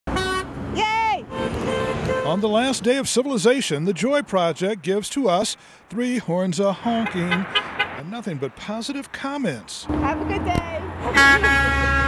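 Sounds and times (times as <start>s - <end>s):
car horns honking: 0.1s - 0.6s, 1.3s - 2.8s, 6.9s - 8.0s, 9.9s - 12.0s
traffic noise: 0.1s - 12.0s.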